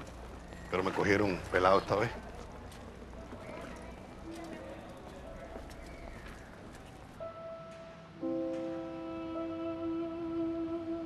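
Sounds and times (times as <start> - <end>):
horse hooves clip-clopping: 0.0 - 7.2
held music notes: 7.2 - 11.0.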